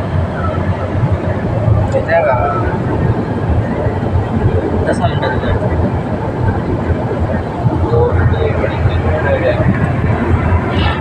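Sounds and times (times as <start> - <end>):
car cabin road and engine noise: 0.0 - 11.0.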